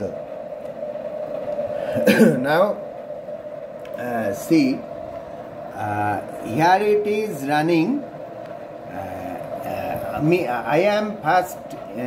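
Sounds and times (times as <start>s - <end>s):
low background noise hum: 0.0s - 12.0s
steady mid-pitched tone: 0.0s - 12.0s.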